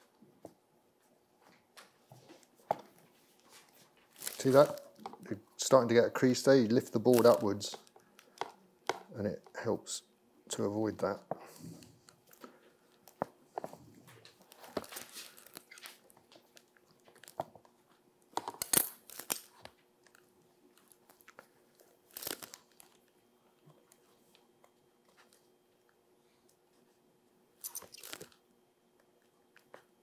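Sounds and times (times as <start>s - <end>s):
vellum crackling and rustling: 0.0s - 9.6s, 11.0s - 30.0s.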